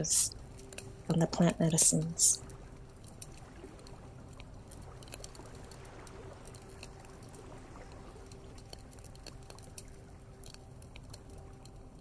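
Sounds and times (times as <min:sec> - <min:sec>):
campfire crackling: 0:00.0 - 0:12.0
faint steady tone: 0:00.0 - 0:12.0.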